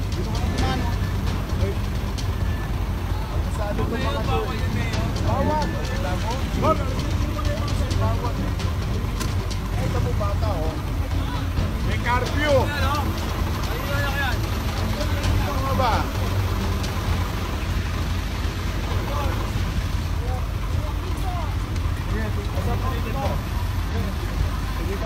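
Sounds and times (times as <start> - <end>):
people talking: 0.0 - 25.0
truck engine idling: 0.0 - 25.0.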